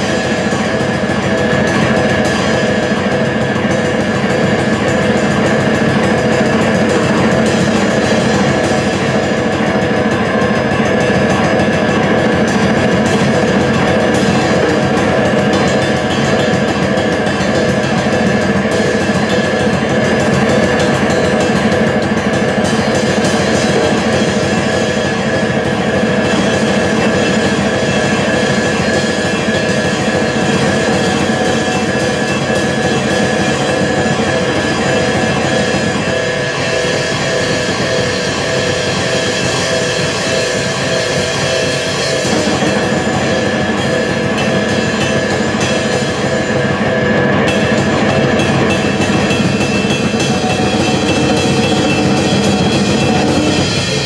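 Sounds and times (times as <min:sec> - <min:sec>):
cymbals ringing: 0:00.0 - 0:54.0
drum kit played fast: 0:00.0 - 0:54.0.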